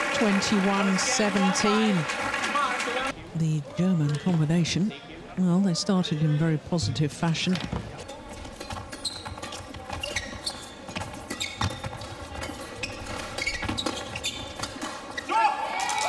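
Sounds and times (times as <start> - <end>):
shoes squeaking on court: 7.5 - 15.4.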